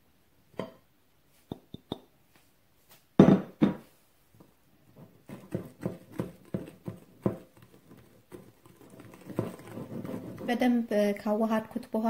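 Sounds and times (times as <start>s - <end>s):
whisk knocking ceramic bowl: 5.0s - 10.7s.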